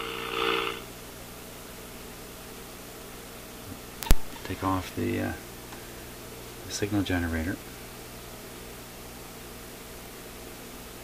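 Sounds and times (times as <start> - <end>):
radio test tone with hiss: 0.0 - 0.8
low mains hum: 0.0 - 11.0.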